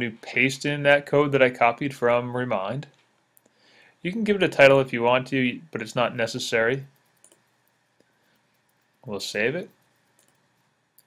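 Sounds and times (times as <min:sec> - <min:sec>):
computer mouse clicks: 0:07.0 - 0:09.0, 0:09.7 - 0:11.0.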